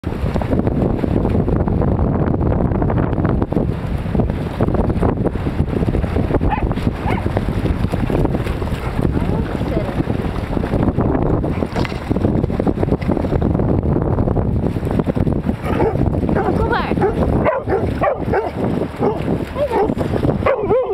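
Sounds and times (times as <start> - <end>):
wind rumble on microphone: 0.0 - 20.9
dogs splashing through water: 3.6 - 13.5, 14.5 - 20.9
dog barking: 6.5 - 7.3, 15.6 - 20.9.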